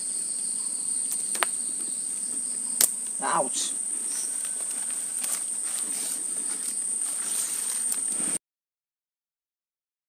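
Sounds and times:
insects calling: 0.0s - 8.4s.

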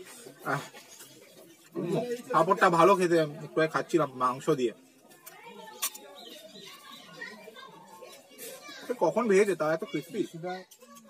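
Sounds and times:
distant people chattering: 0.0s - 11.0s.

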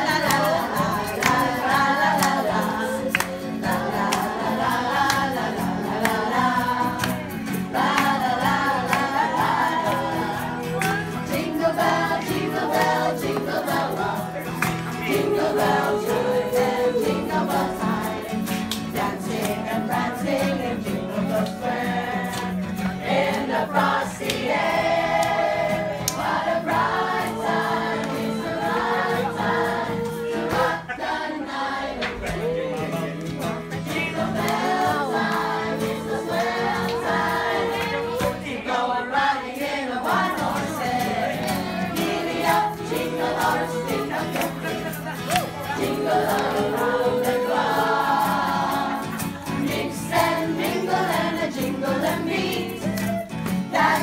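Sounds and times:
group singing a carol: 0.0s - 54.0s
held accompaniment notes: 0.0s - 54.0s.

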